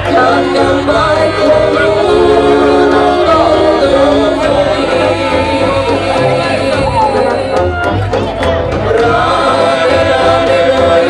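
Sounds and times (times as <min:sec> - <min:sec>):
woman singing: 0:00.0 - 0:07.7
brass band playing: 0:00.0 - 0:11.0.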